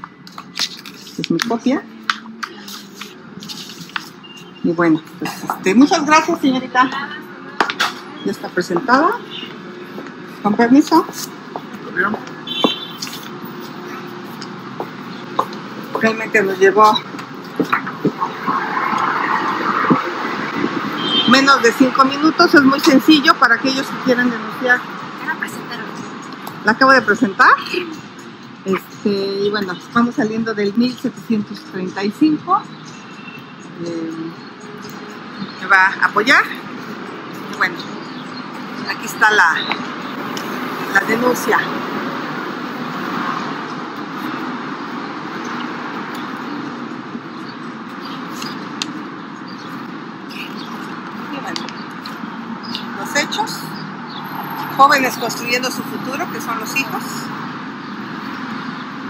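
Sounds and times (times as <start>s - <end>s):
road traffic noise: 0.0s - 59.0s.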